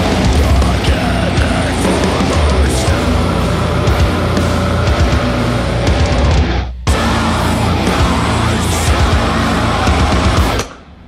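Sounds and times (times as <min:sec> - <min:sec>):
drum kit: 0:00.0 - 0:10.9
distorted electric guitar: 0:00.0 - 0:11.0.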